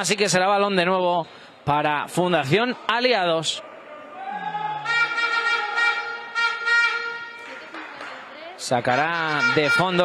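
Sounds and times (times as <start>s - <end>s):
buzzy horn blasts: 4.8s - 7.8s, 9.2s - 10.0s.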